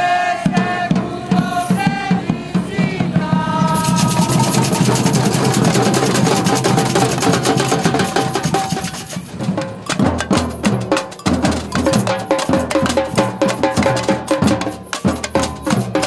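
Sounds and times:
samba drum band playing: 0.0 - 16.0.

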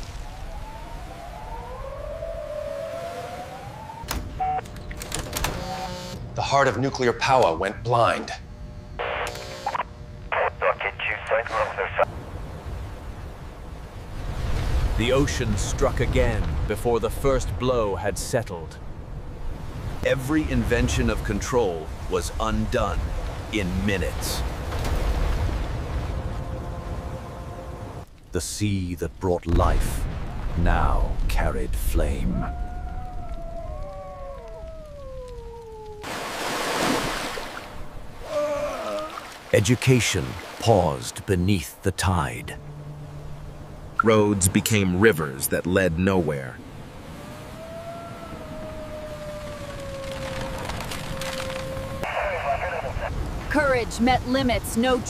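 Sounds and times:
rushing water: 35.7 - 41.6.

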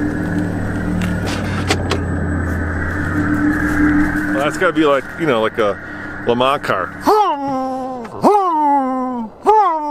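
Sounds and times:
man wailing through cupped hands: 6.9 - 9.9.

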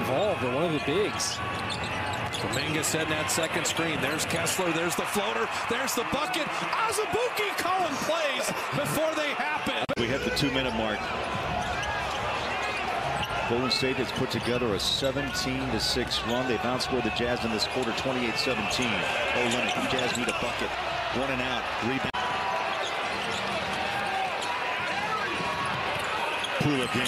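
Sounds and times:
arena crowd noise: 0.0 - 27.0.

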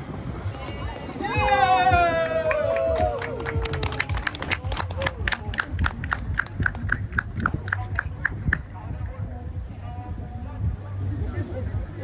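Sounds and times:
outdoor crowd noise: 0.0 - 12.0
crowd shouting or cheering: 1.2 - 5.2.

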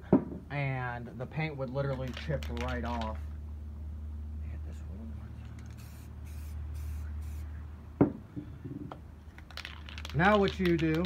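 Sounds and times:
spray paint can hissing: 5.6 - 7.5.

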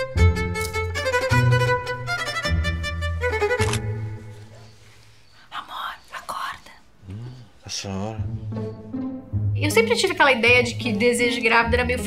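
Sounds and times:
woman whispering: 5.4 - 7.0.

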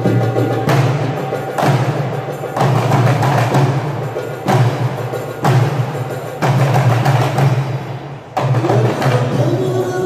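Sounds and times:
fast hand drum patter: 0.0 - 10.0.

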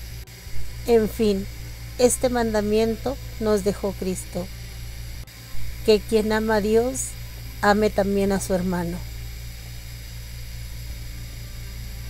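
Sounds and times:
background hiss: 0.0 - 12.0
low electrical hum: 0.0 - 12.0.

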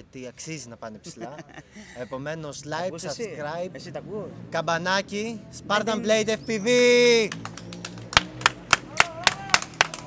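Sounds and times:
person clapping hands: 7.3 - 10.0.

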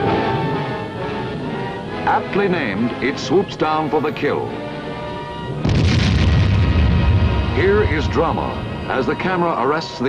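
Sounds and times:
dramatic film soundtrack music: 0.0 - 10.0
loud deep boom: 5.6 - 9.2.

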